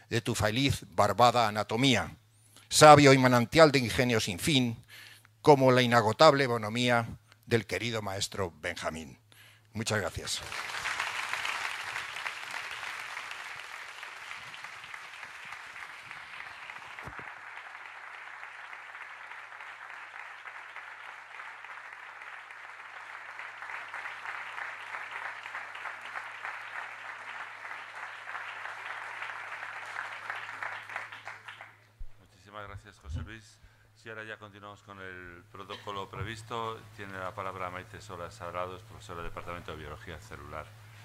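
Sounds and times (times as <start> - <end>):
audience applauding: 10.3 - 31.8.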